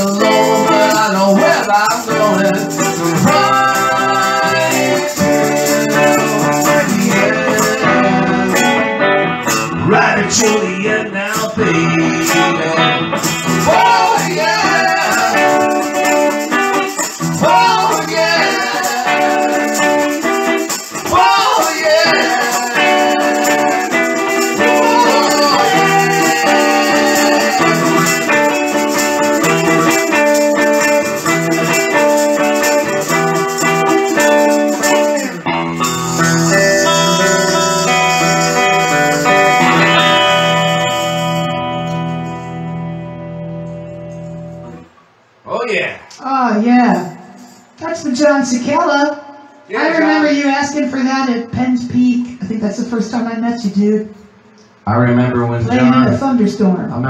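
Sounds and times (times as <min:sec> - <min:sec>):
hand shaker: 0:00.0 - 0:08.7, 0:13.2 - 0:42.5, 0:46.8 - 0:47.8
electric guitar chords: 0:00.0 - 0:45.4
woman singing: 0:24.5 - 0:28.2.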